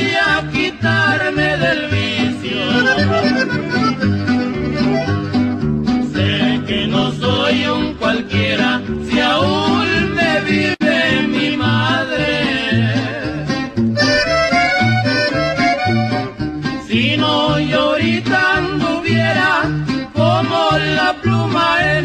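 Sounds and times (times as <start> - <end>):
accordion melody: 0.0 - 22.0
steady alternating bass: 0.0 - 22.0
strummed guitar: 0.0 - 22.0.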